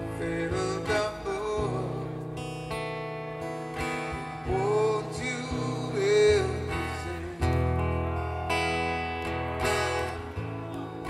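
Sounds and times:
person singing: 0.0 - 2.4, 4.1 - 8.7
live reggae band playing: 0.0 - 11.0.

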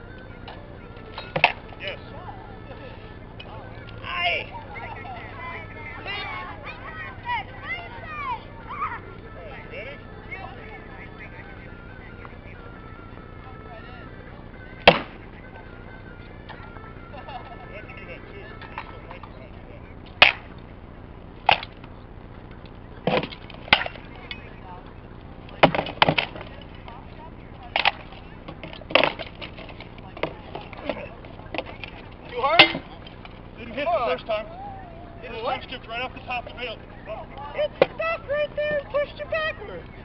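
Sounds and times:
rattan swords striking shields: 1.2 - 1.7, 14.8 - 15.2, 20.2 - 20.5, 21.4 - 21.8, 23.0 - 24.0, 25.6 - 26.7, 27.7 - 31.9, 32.6 - 33.0.

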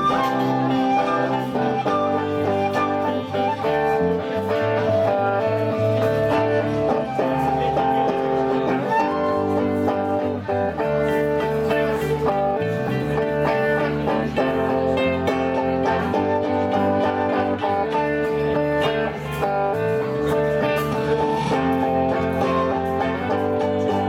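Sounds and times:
flute melody: 0.0 - 24.0
strummed guitars: 0.0 - 24.0.

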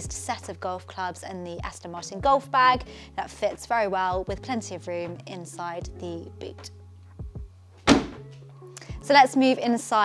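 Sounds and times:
car boot lid shutting thunk: 7.9 - 8.2.

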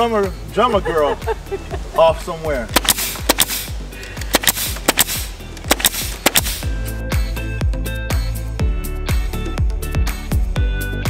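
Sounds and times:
background music: 0.0 - 11.0
nail gun firing into wood: 2.7 - 6.7.

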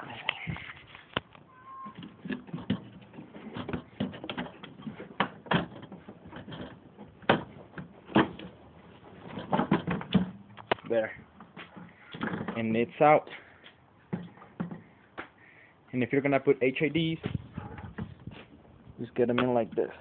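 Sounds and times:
plastic knocks clicks and scrapes: 0.5 - 8.6, 9.2 - 10.8, 11.4 - 12.7, 14.1 - 14.9.

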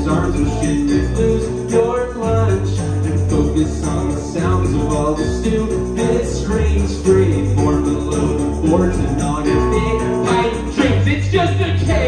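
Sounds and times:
drums: 0.0 - 12.0
electric guitar: 0.0 - 12.0
low steady bass line: 0.0 - 12.0.

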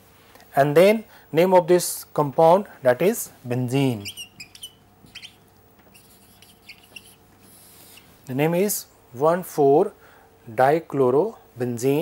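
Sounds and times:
marker squeaking on whiteboard: 3.8 - 8.2.

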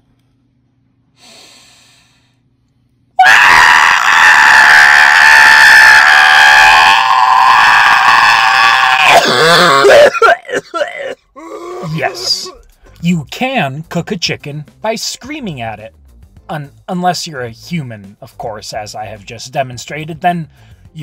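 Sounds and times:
person gasping: 1.2 - 2.4, 10.9 - 13.0
person screaming: 3.2 - 12.6.

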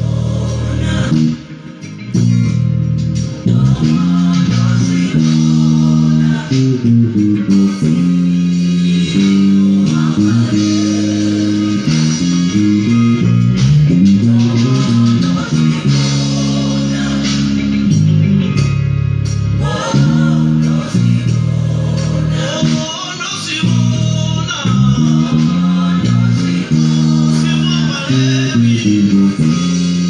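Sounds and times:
backing track music: 0.0 - 30.0
electric bass guitar: 0.0 - 30.0.

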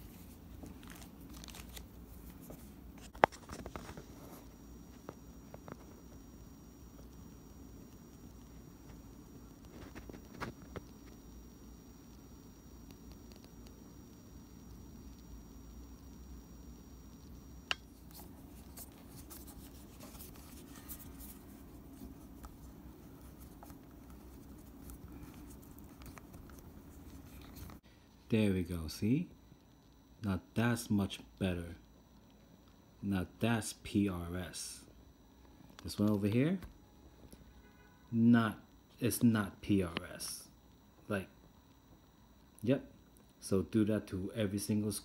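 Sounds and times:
finger-handling rustles: 17.9 - 27.8.

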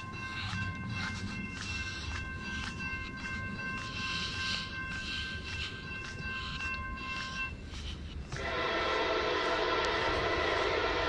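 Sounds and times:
high ringing tones: 0.0 - 10.7
train wheel clacks: 0.0 - 11.0
freight train rumbling past: 7.4 - 11.0.

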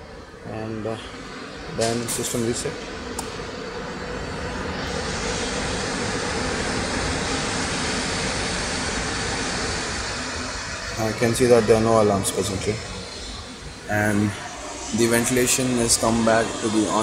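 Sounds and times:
ventilation fans rushing air: 0.0 - 17.0.

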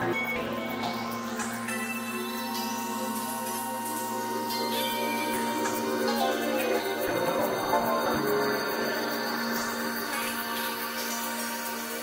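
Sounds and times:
synthesizer drones: 0.0 - 12.0.

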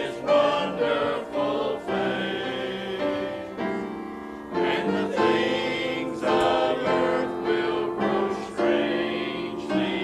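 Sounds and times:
choir singing a hymn: 0.0 - 10.0.

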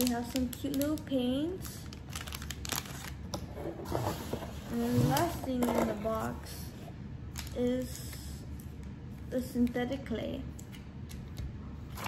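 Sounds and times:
plastic packaging handling: 0.0 - 6.3.

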